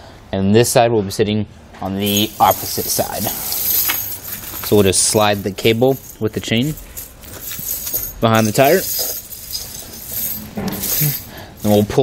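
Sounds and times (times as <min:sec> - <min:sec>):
chain links jingling and clinking: 0:02.0 - 0:12.0
chain scraping across floor: 0:02.1 - 0:12.0.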